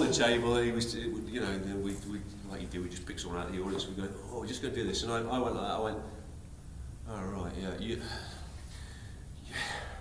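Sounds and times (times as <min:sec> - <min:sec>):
man's breathy gasp: 0:08.0 - 0:10.0.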